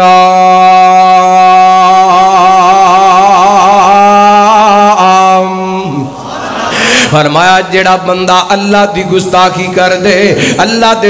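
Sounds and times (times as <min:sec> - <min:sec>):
man chanting recitation: 0:00.0 - 0:06.2, 0:07.0 - 0:11.0.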